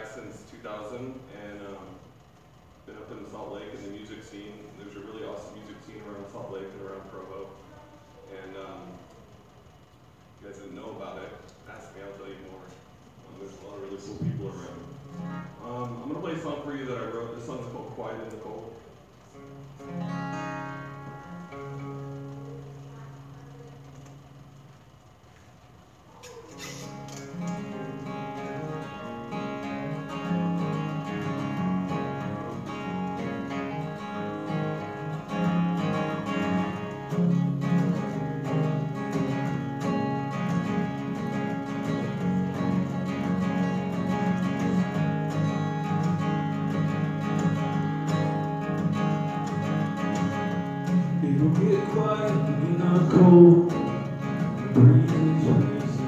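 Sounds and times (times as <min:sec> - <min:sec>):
solo acoustic guitar: 0:13.6 - 0:24.3, 0:26.1 - 0:56.0.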